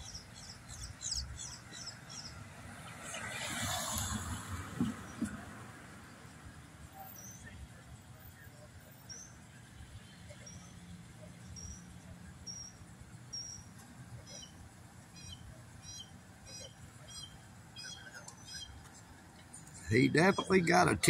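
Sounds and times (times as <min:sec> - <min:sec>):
bird chirping: 0:00.0 - 0:02.4, 0:11.4 - 0:18.9, 0:19.8 - 0:21.0.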